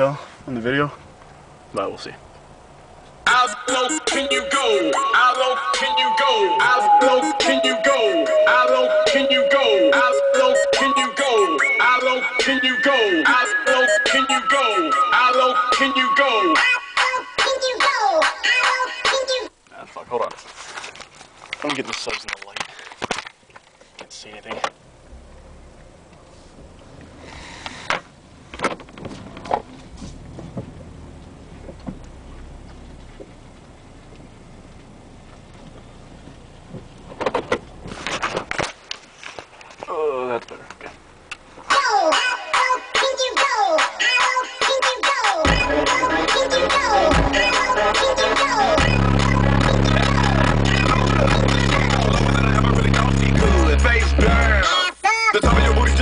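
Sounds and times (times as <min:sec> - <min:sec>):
low steady rumble: 0:00.0 - 0:03.4, 0:24.7 - 0:38.9, 0:40.5 - 0:41.7, 0:45.5 - 0:54.6
music with heavy deep bass: 0:45.5 - 0:54.7, 0:55.4 - 0:56.0.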